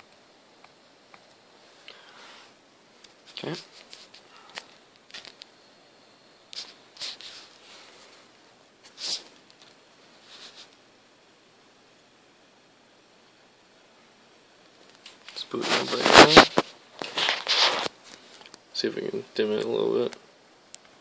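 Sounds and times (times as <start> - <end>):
faint room hiss: 0.0 - 21.0
handling rustles and clicks: 3.0 - 5.5, 14.8 - 18.6.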